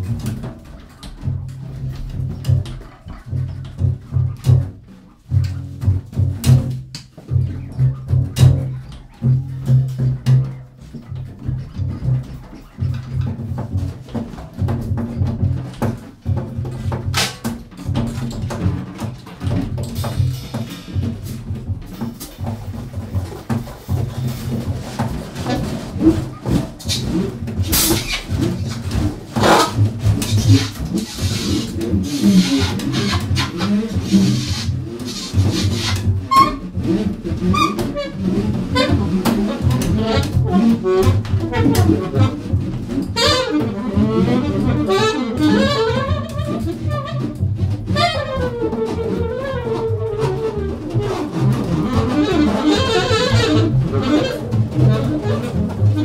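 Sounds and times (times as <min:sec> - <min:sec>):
double bass low notes: 0:00.0 - 0:56.0
high alto saxophone notes: 0:37.5 - 0:56.0.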